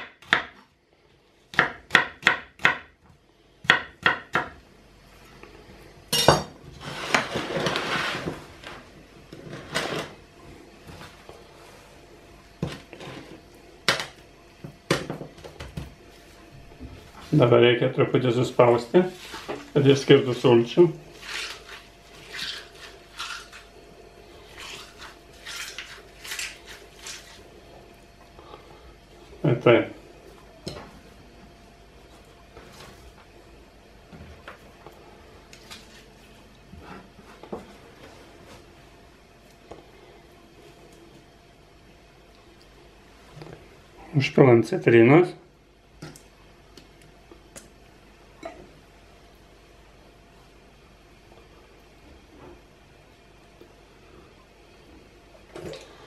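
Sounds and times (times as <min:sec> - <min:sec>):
hands squeezing raw onion: 0:19.1 - 0:28.3.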